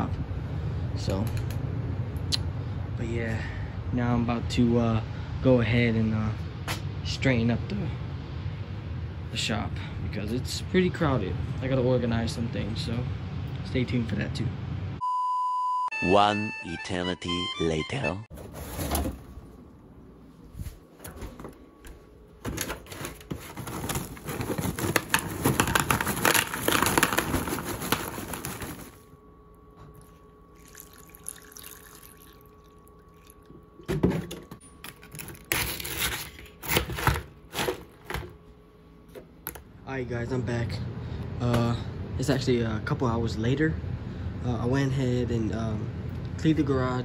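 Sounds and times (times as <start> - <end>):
cereal and milk pouring into bowl: 30.6 - 33.4.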